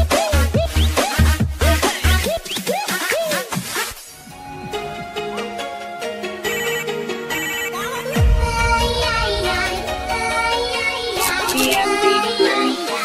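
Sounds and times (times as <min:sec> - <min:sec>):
electronic dance music: 0:00.0 - 0:05.6, 0:06.4 - 0:13.0.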